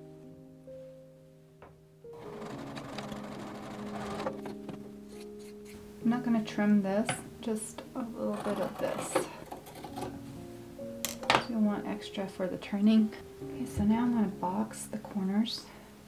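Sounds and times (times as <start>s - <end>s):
background music: 0.0s - 16.0s
sewing machine stitching: 2.2s - 4.7s
person's voice: 6.0s - 9.4s.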